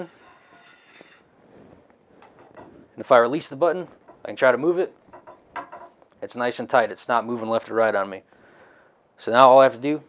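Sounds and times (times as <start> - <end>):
metal tube sliding with squeal: 0.0 - 1.3.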